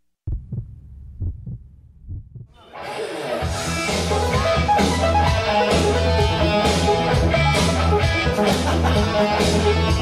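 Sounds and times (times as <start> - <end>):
heartbeat double thumps: 0.2 - 2.6.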